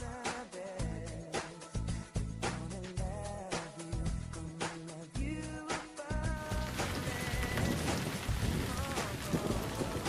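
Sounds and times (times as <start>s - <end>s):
background music with beat: 0.0s - 10.0s
steady rain: 6.4s - 10.0s.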